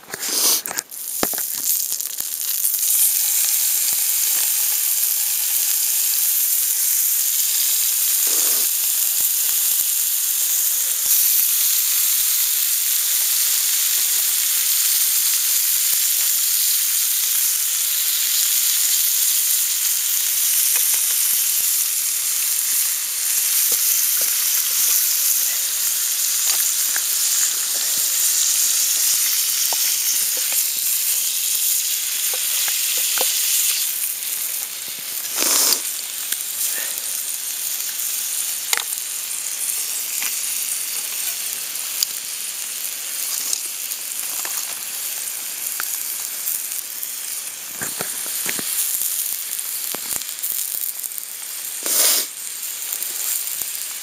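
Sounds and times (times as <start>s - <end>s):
ham sizzling in a frying pan: 0.0s - 54.0s.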